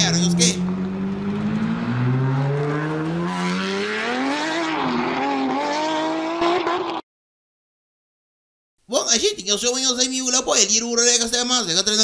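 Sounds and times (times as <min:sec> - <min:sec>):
car engine accelerating: 0:00.0 - 0:07.0.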